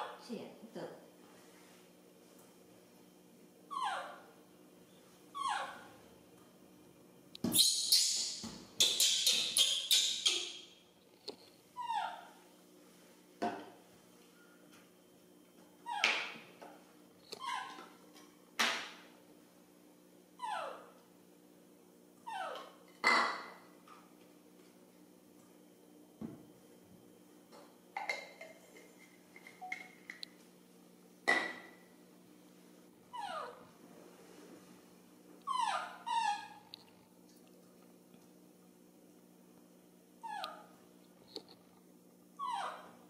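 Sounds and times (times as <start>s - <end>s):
baby monkey whimpering cries: 3.7s - 4.3s, 5.4s - 5.9s, 11.8s - 12.4s, 17.4s - 17.8s, 20.4s - 20.9s, 22.2s - 22.8s, 33.1s - 33.6s, 35.5s - 36.6s, 40.2s - 40.7s, 42.4s - 43.0s.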